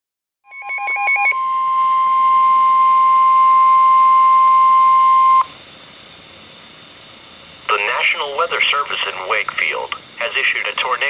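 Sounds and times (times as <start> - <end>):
rapid beeps: 0.5 - 1.4
steady warning alarm tone: 0.5 - 5.6
faint radio hiss: 5.9 - 11.0.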